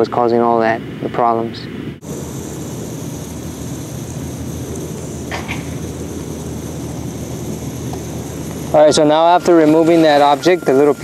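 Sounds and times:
sprinkler spraying water: 2.0s - 11.0s.

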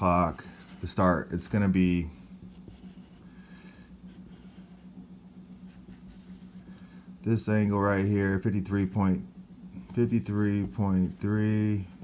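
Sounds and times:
faint low hum: 0.0s - 12.0s
pencil scratching on paper: 0.1s - 1.1s, 2.5s - 3.3s, 4.0s - 4.9s, 5.6s - 6.6s.

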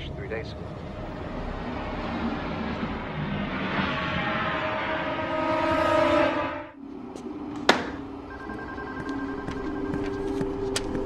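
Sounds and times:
soft music of held tones: 6.8s - 11.0s.

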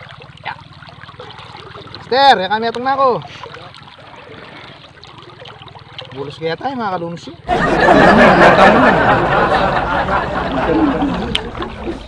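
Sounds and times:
water trickling and sloshing: 0.0s - 7.5s, 9.5s - 12.0s.

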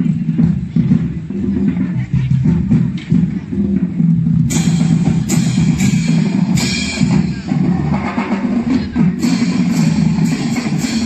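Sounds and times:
marching band playing: 0.0s - 11.0s.

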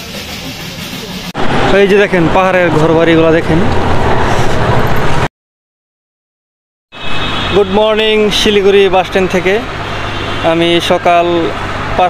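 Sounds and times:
voice: 0.0s - 3.7s, 7.6s - 9.7s, 10.5s - 11.5s.

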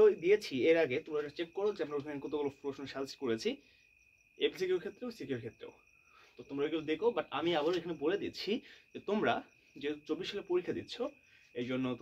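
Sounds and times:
man speaking: 0.0s - 3.6s, 4.4s - 5.8s, 6.4s - 12.0s.

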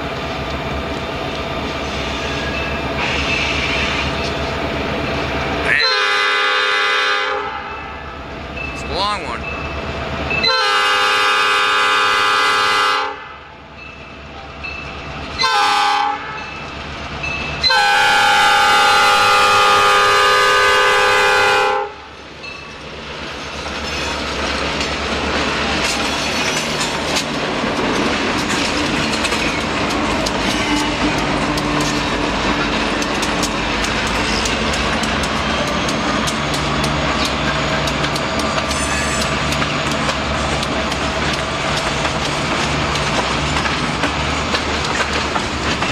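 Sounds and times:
locomotive engines rumbling: 0.0s - 12.7s, 16.3s - 45.9s
locomotive air horn: 5.7s - 7.7s, 10.4s - 13.4s, 15.4s - 16.4s, 17.6s - 22.0s
wheels clicking over rail joints: 22.4s - 45.9s.

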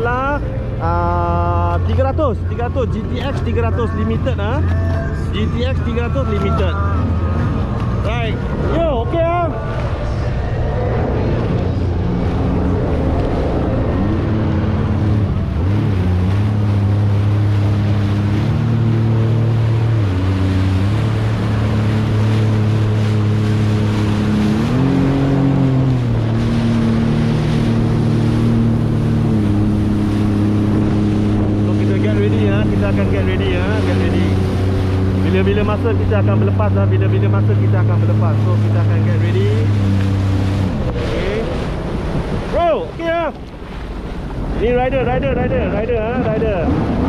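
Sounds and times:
jet ski engine running: 0.0s - 47.0s
rushing water: 0.0s - 47.0s
wind: 0.0s - 47.0s.

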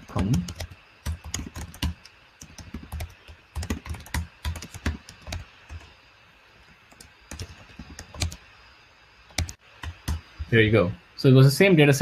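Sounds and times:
keyboard typing: 0.0s - 5.9s, 6.9s - 8.4s, 9.3s - 10.5s.

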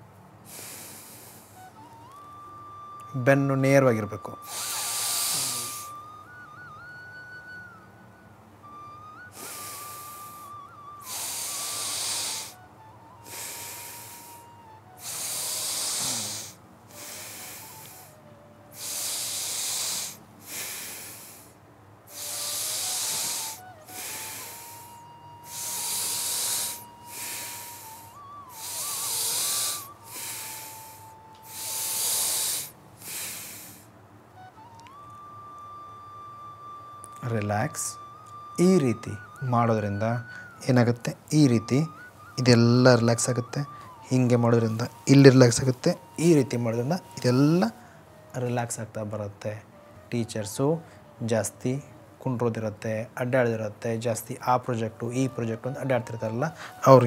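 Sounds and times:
person breathing deeply: 0.5s - 1.7s, 4.4s - 6.0s, 9.4s - 12.6s, 13.2s - 18.2s, 18.8s - 33.9s, 40.2s - 40.6s, 43.4s - 45.1s, 46.9s - 48.2s, 56.5s - 56.8s
soft sustained music tone: 1.3s - 57.0s.

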